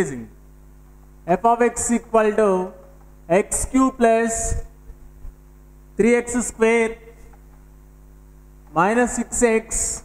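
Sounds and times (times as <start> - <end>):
man speaking: 0.0 - 0.4, 1.3 - 4.7, 6.0 - 7.2, 8.7 - 10.0
electrical mains hum: 0.0 - 10.0.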